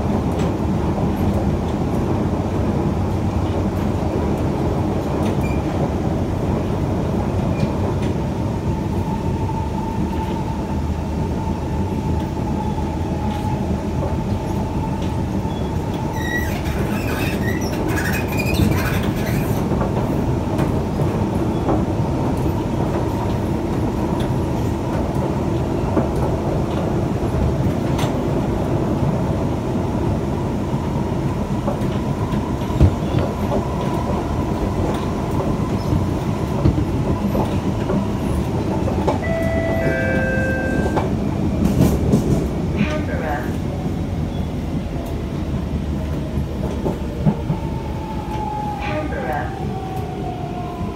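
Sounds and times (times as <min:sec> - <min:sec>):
train wheels rumbling on track: 0:00.0 - 0:50.9.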